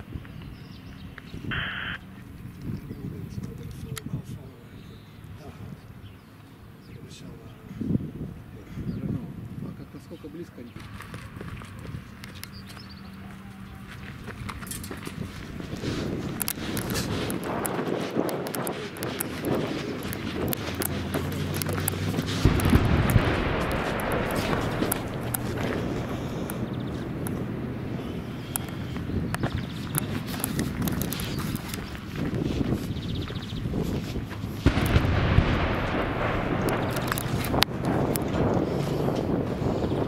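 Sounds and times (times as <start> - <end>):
footsteps on rubble: 10.8 - 39.6
vehicle engine running: 19.4 - 39.6
loud low boom: 21.6 - 29.0, 34.6 - 39.6.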